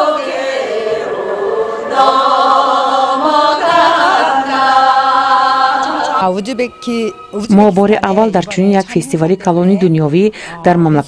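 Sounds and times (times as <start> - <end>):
women singing in unison: 0.0 - 6.2.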